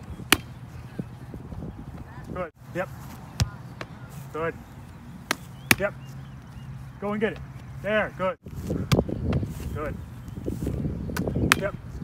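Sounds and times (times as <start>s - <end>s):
soccer ball kicked: 3.2s - 4.0s, 8.5s - 9.5s.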